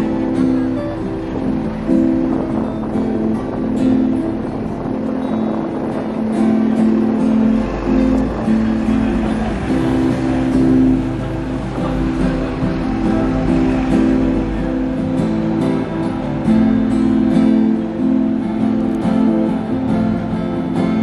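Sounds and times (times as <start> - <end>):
acoustic guitars playing pop song: 0.0 - 21.0
low traffic rumble: 0.0 - 21.0.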